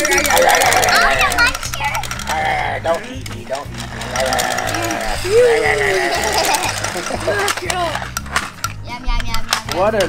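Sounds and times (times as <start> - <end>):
background music with steady beat: 0.0 - 10.0
plastic toy trucks rolling on table: 0.0 - 10.0.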